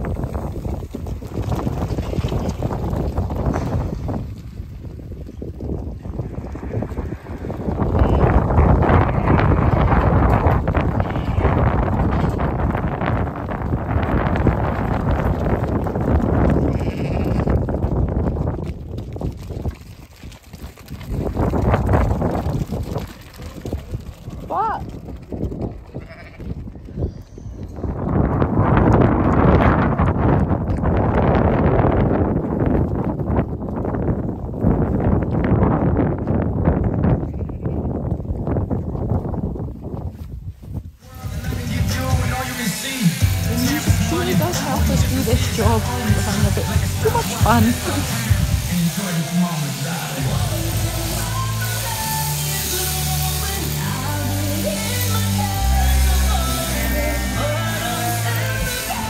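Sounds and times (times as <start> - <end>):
rushing noise of running flock: 0.0 - 59.0
sheep bleating: 7.9 - 10.2, 10.8 - 11.9, 16.6 - 17.6, 25.9 - 26.5.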